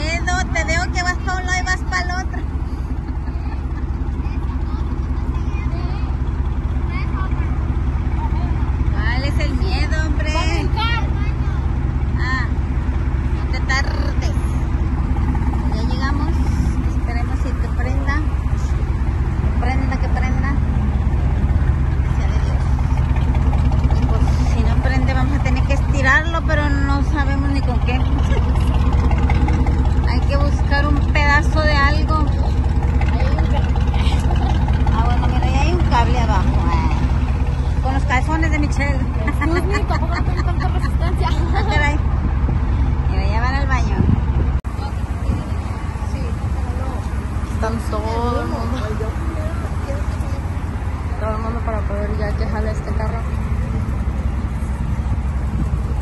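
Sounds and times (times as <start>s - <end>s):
people talking: 0.0s - 6.2s, 6.9s - 12.6s, 13.4s - 14.6s, 15.6s - 18.8s, 19.4s - 20.7s, 22.0s - 23.0s, 23.8s - 42.1s, 43.0s - 54.7s
vehicle engine idling: 0.0s - 56.0s.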